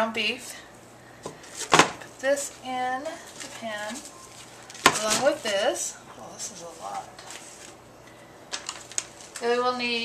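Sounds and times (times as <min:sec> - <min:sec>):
foam tray and plastic wrap handling: 0:01.4 - 0:05.8.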